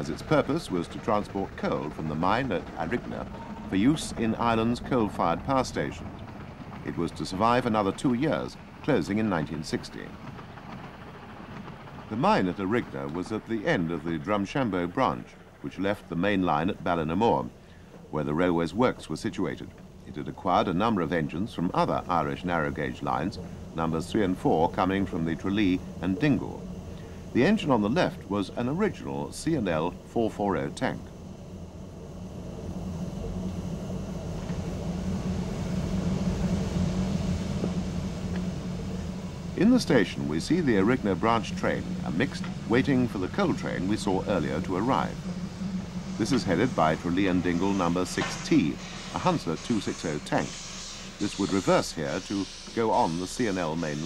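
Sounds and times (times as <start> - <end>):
steam train rumbling past: 0.0 - 54.0
faint hiss: 12.1 - 54.0
steam hiss: 33.5 - 54.0.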